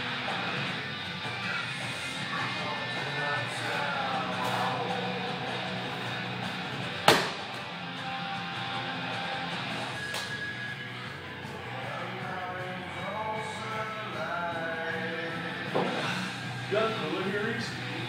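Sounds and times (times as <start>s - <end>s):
rock music with guitar: 0.0s - 18.0s.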